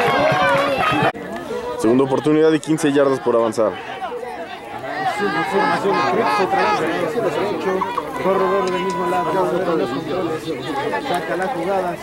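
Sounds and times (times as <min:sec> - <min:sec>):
many voices chattering: 0:00.0 - 0:12.0.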